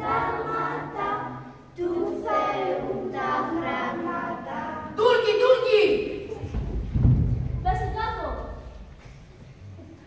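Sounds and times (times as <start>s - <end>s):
children's choir singing: 0.0s - 6.4s.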